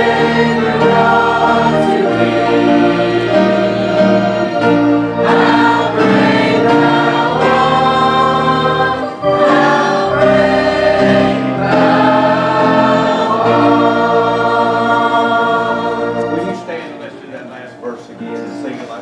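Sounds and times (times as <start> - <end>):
church choir singing a hymn: 0.0 - 19.0
organ bass notes: 0.0 - 19.0.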